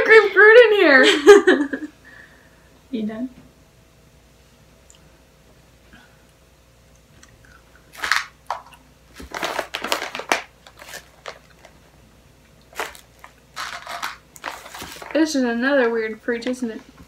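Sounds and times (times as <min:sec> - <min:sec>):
candy bag crinkling: 0:07.8 - 0:11.9, 0:12.6 - 0:15.4.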